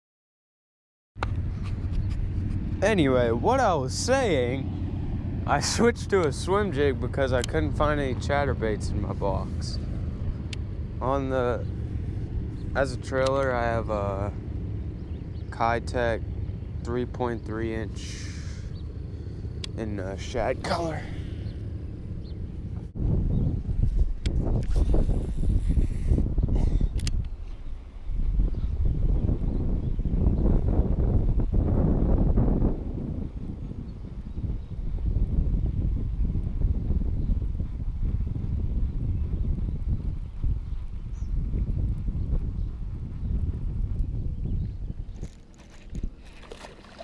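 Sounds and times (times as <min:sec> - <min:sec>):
wind buffeting microphone: 0:01.2 - 0:47.0.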